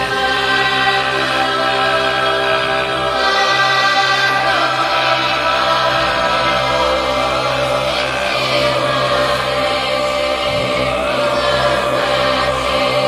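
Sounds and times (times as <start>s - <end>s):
choir singing long notes: 0.0s - 13.0s
steady low drone: 0.0s - 13.0s.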